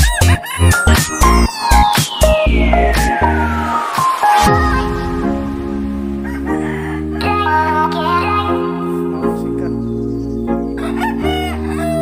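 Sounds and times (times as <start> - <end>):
background music: 0.0 - 12.0
rooster crowing: 6.1 - 7.4, 10.8 - 12.0.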